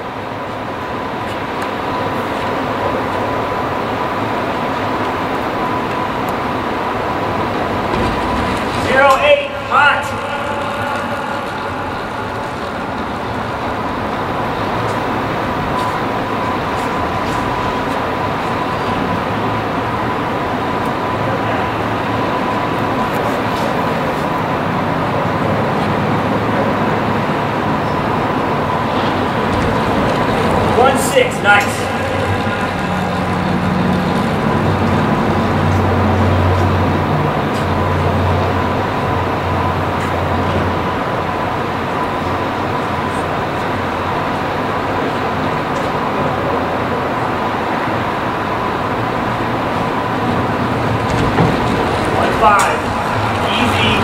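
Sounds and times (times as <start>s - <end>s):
rushing hall noise: 0.0s - 54.0s.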